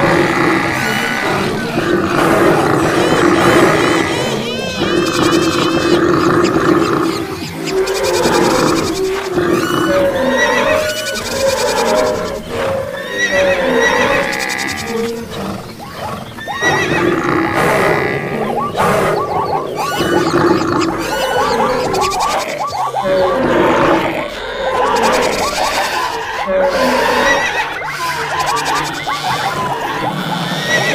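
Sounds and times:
horse whinnies: 0.0s - 18.5s, 19.8s - 30.9s
overlapping animal calls: 0.0s - 30.9s.

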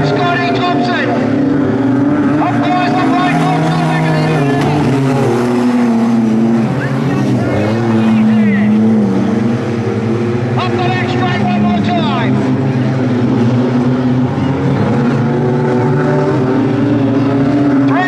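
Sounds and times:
race car engines racing: 0.0s - 18.0s.

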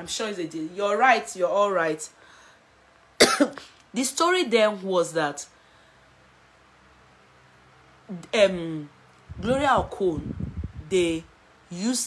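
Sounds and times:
woman coughing: 3.2s - 3.7s.

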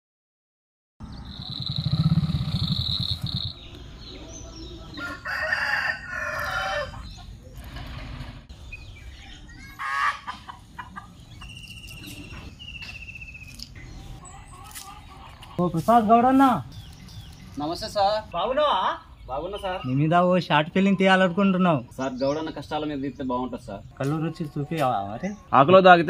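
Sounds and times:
steady high tone: 1.0s - 3.7s
loud low buzz: 1.0s - 4.1s
bird trill: 1.0s - 7.3s, 11.0s - 15.3s
birds calling: 1.0s - 26.0s.

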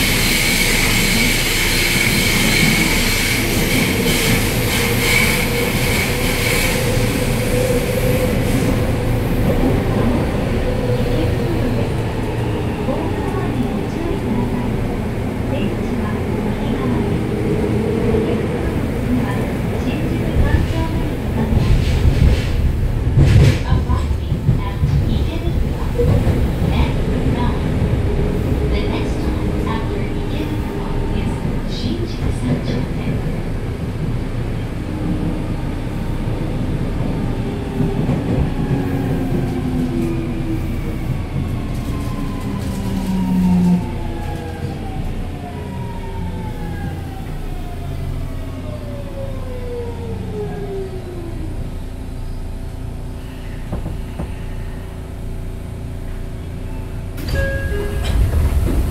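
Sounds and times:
train inverter whining: 0.0s - 21.6s
train wheels rumbling on rails: 0.0s - 58.9s.

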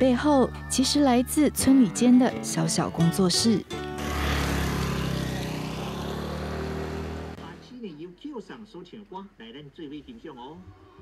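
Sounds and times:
road noise: 3.8s - 7.8s
motor scooter engine running: 4.0s - 7.4s.

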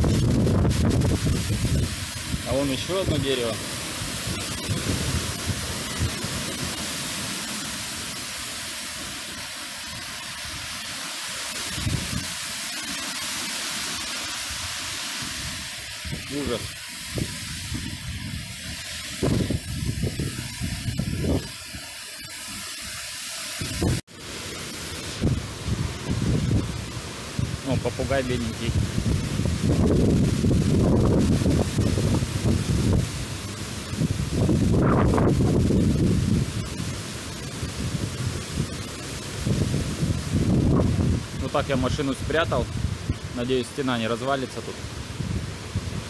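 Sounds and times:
wind gusts buffeting microphone: 0.0s - 8.2s, 11.5s - 12.9s, 14.4s - 21.9s, 23.6s - 24.0s, 24.7s - 43.4s, 44.7s - 46.0s
wind-driven rain hiss: 0.0s - 46.0s.

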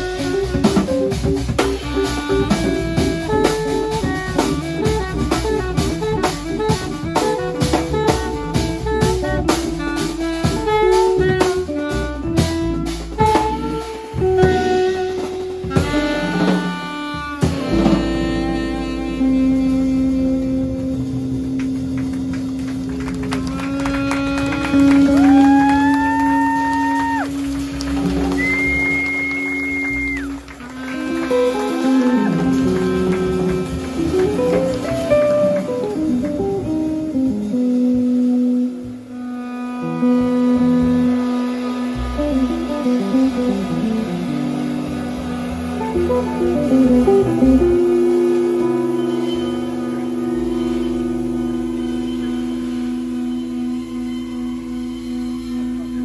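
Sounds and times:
drum kit and cymbals: 0.0s - 56.0s
saxophone: 0.0s - 56.0s
upright bass: 0.0s - 56.0s
electric guitar: 17.4s - 51.5s
held low bass note: 32.4s - 56.0s.

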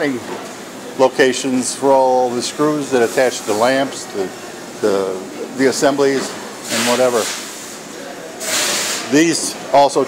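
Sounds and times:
faint factory hum: 0.0s - 10.0s.

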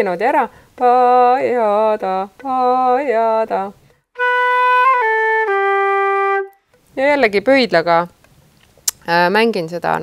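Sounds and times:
woman speaking: 0.0s - 3.8s, 7.0s - 8.2s, 8.9s - 10.0s
flute trill: 4.2s - 6.6s.

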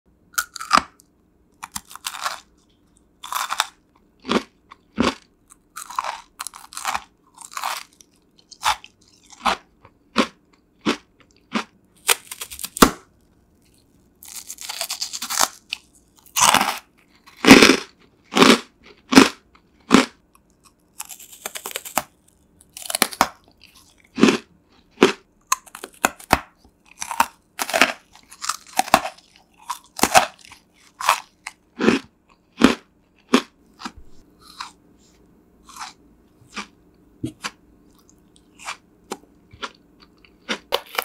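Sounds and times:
crunching and chewing candy: 0.3s - 41.0s.

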